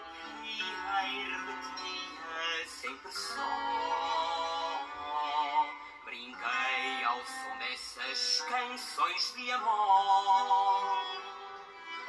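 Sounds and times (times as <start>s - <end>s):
boy singing: 0.0s - 11.8s.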